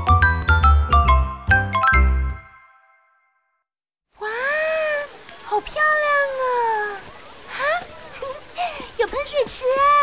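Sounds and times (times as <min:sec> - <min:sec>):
chiming jingle: 0:00.0 - 0:03.6.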